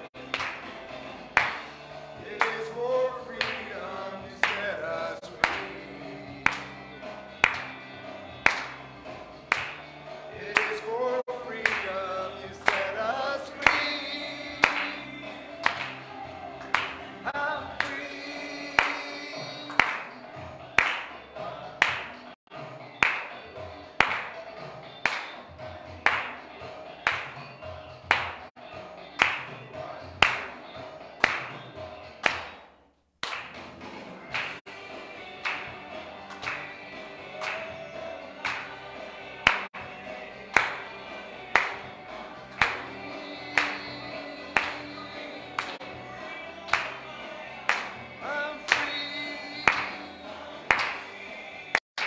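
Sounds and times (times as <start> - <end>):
voices singing with band: 2.0 - 7.4, 10.1 - 20.2, 34.9 - 51.8.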